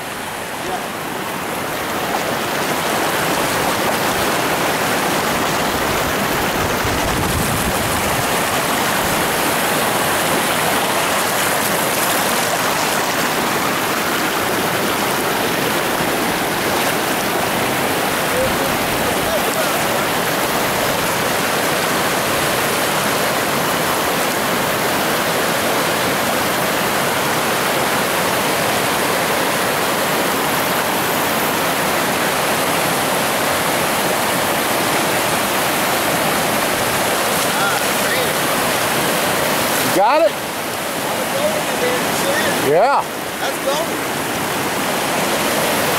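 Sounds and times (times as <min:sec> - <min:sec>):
river rushing over rocks: 0:00.0 - 0:45.9.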